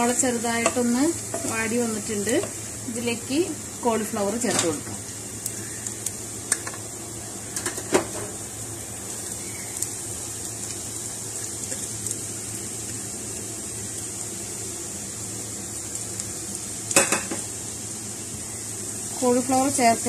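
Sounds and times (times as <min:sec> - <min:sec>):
onions sizzling in pan: 0:00.0 - 0:20.0.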